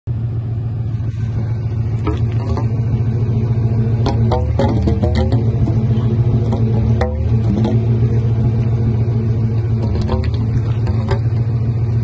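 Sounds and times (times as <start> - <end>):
car engine idling: 0.1 - 12.0.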